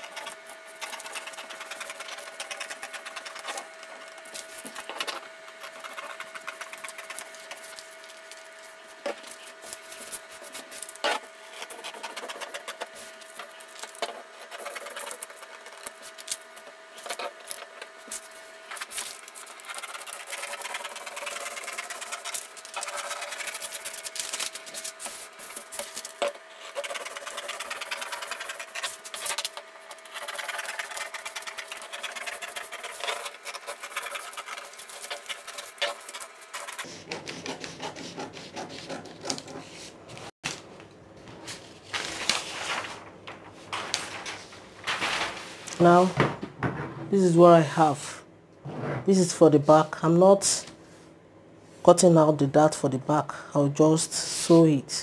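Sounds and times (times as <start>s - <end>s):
scissors snipping paper: 0.0s - 8.4s, 9.2s - 39.5s
paper rustling and crinkling: 0.8s - 36.8s, 39.2s - 46.4s.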